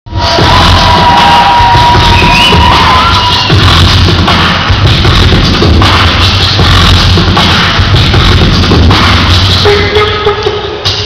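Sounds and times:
crowd cheering: 0.1s - 4.7s
loud electronic music: 0.1s - 11.0s.

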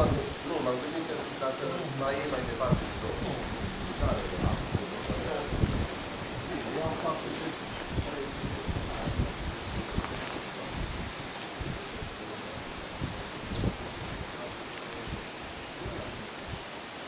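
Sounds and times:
wind buffeting microphone: 0.0s - 0.8s, 1.6s - 16.8s.

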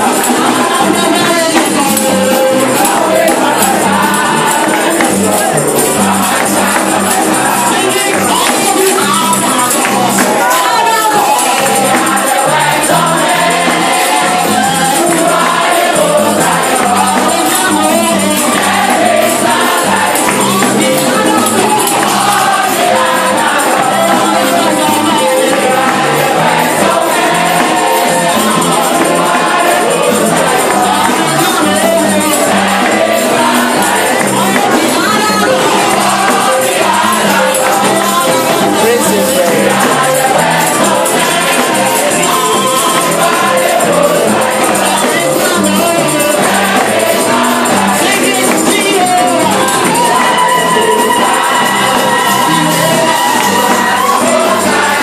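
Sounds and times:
backing music: 0.0s - 55.0s
band accompaniment: 0.0s - 55.0s
choir of women singing: 0.0s - 55.0s
percussion beat: 0.0s - 55.0s
tambourine jingling: 0.0s - 55.0s.

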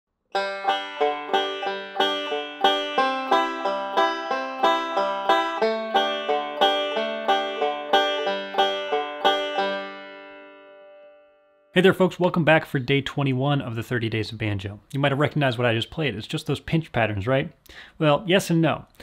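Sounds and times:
banjo picking: 0.3s - 11.1s.

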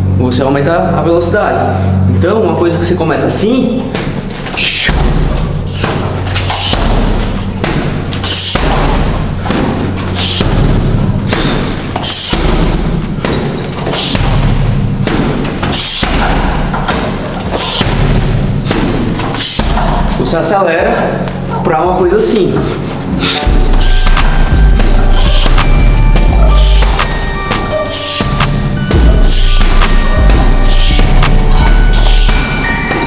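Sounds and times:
music with steady beat: 2.8s - 33.0s
punches and kicks on heavy bags: 3.8s - 20.6s, 22.5s - 33.0s.

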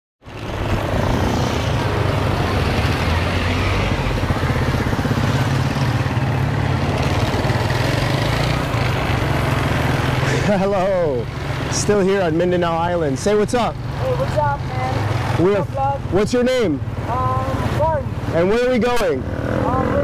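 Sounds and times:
road and wind noise: 0.2s - 20.0s.

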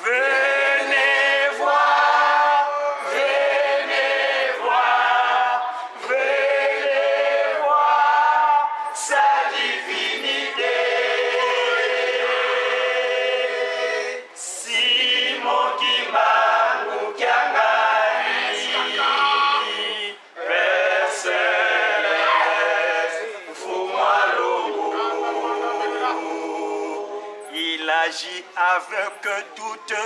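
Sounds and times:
choir singing in harmony: 0.0s - 28.4s.

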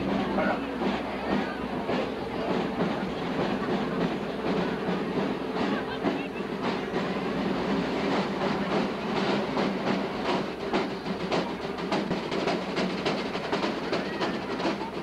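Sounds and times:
droning clattering street rumble: 0.0s - 15.0s
drumming: 0.0s - 15.0s.

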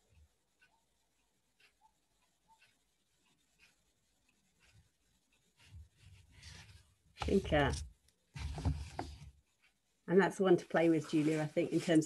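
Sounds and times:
soft low rustle: 4.4s - 9.8s, 10.6s - 12.0s.

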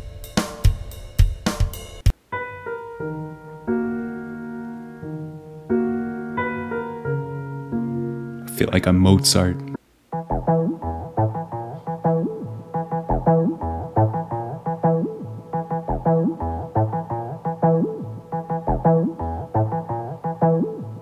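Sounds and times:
deep bass notes: 8.7s - 21.0s
plucked bass synth notes: 9.6s - 21.0s.

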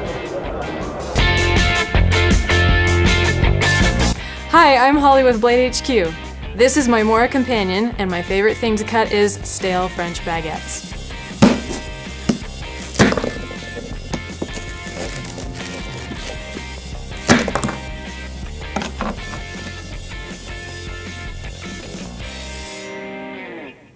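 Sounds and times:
background music with bass beat: 10.8s - 22.7s
knife crunching bread crust: 12.7s - 17.8s.

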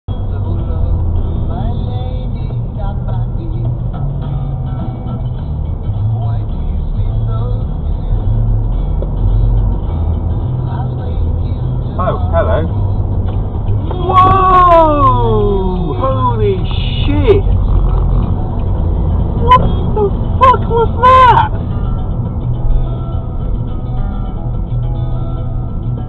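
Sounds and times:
car engine and road rumble: 0.1s - 26.0s.

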